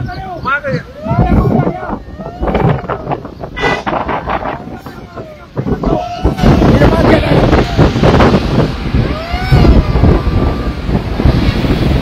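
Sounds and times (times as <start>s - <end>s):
engine and road rumble: 0.0s - 12.0s
wind buffeting microphone: 0.0s - 12.0s.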